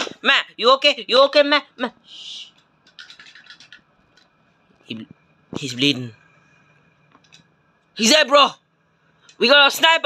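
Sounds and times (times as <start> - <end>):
man speaking: 4.8 - 6.3, 8.0 - 8.6, 9.4 - 10.0.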